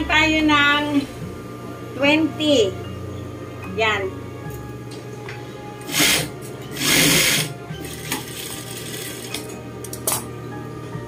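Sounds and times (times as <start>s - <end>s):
sewing machine stitching: 5.9s - 9.3s.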